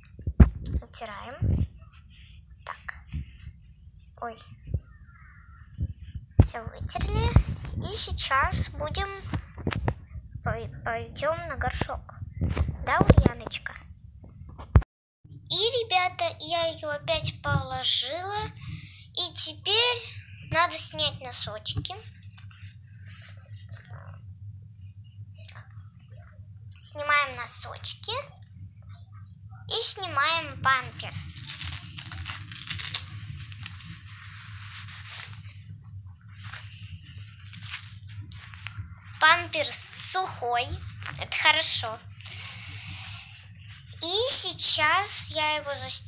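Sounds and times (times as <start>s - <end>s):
steady low hum: 0.0s - 46.0s
faint fabric rustling: 0.1s - 10.5s, 20.5s - 25.0s, 28.5s - 46.0s
diaper rustling: 30.9s - 44.4s.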